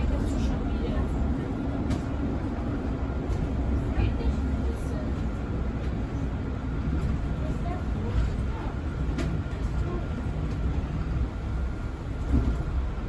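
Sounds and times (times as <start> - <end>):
bus engine rumble: 0.0 - 13.0
road noise: 0.0 - 13.0.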